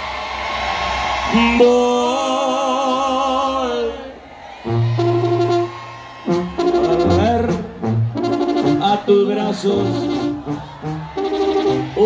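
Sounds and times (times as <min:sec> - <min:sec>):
brass band playing chords: 0:04.6 - 0:12.0.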